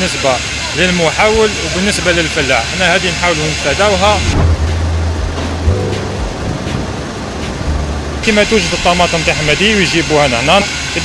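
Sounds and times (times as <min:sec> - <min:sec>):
tractor diesel engine drone: 0:00.0 - 0:11.0.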